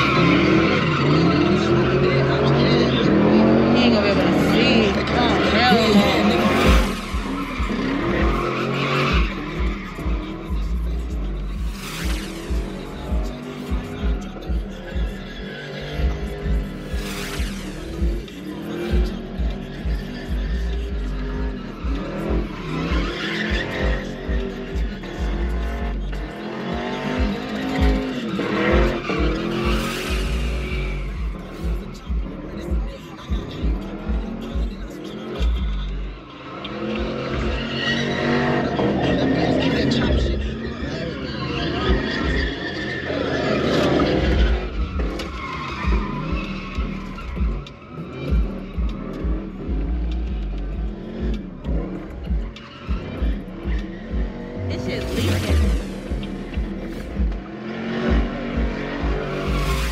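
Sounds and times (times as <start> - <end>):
car engines revving: 0.0 - 59.9
crowd voices: 0.0 - 59.9
pulsing bass music: 0.0 - 59.9
tires squealing: 0.0 - 59.9.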